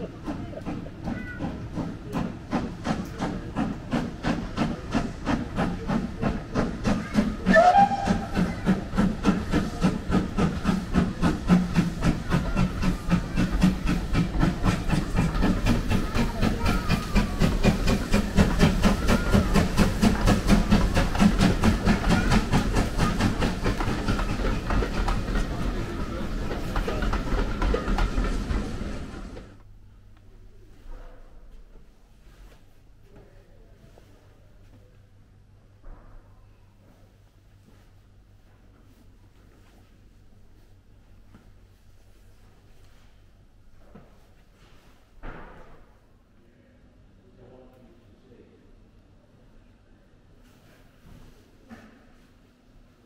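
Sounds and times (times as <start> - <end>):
steam locomotive chuffing: 0.0 - 29.6
steam whistle: 7.4 - 8.3.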